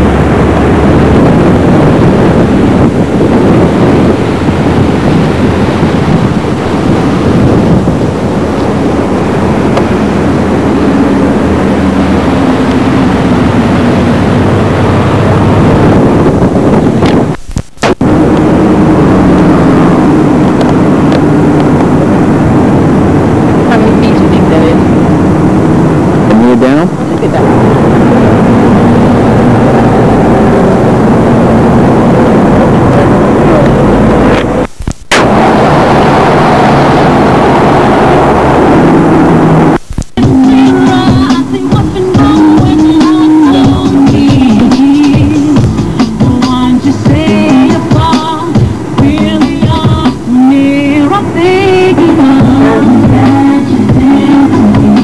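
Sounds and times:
loud steady rumbling: 0.0s - 55.0s
faint voices: 51.8s - 54.4s.

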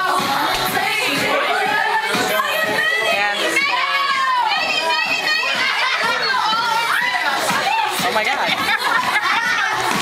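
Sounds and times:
women shrieking and squealing: 1.4s - 8.0s.

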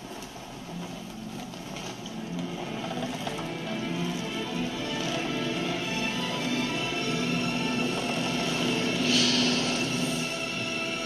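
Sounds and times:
low drone: 1.0s - 11.0s
hissing rush: 4.2s - 11.0s.

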